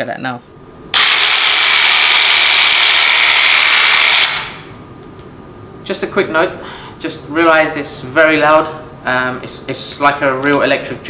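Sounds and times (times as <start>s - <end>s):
massage gun running: 0.9s - 4.6s.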